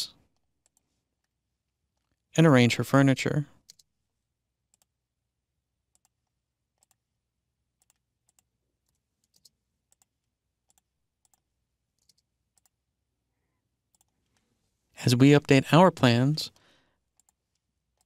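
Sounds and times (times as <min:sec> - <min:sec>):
mouse and keyboard clicks: 0:03.6 - 0:03.9, 0:07.8 - 0:10.1, 0:12.0 - 0:12.8.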